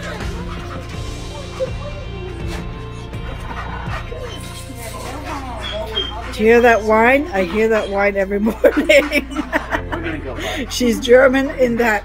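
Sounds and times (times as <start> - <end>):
dog whining and yipping: 0.0 - 7.9
background music: 0.0 - 12.0.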